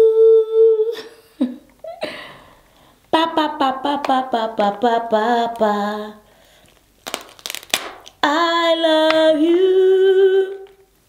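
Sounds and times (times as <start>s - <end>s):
crab shell cracking: 6.6s - 8.2s.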